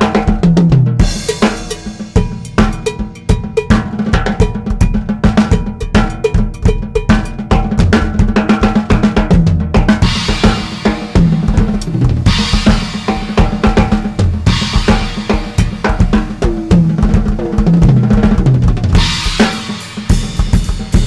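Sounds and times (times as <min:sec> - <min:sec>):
bass drum: 0:00.0 - 0:21.0
snare and tom strokes: 0:00.0 - 0:21.0.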